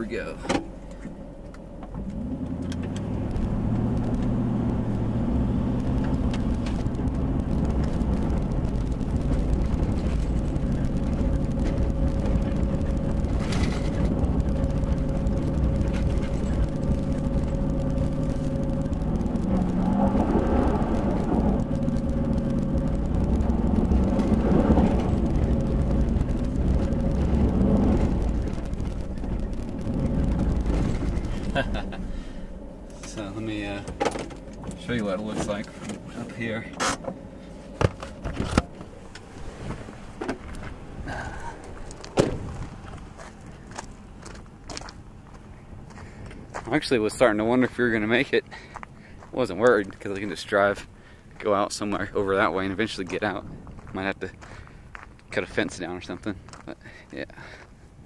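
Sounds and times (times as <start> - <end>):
truck engine pulling under load: 0.6 - 36.2.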